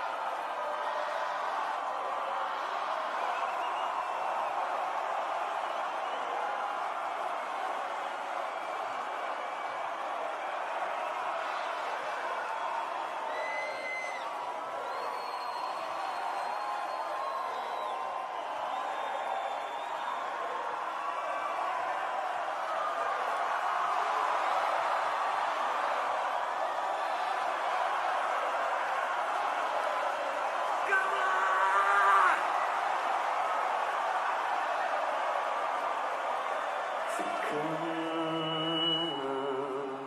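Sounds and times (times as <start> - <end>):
crowd cheering and shouting: 0.0 - 40.0.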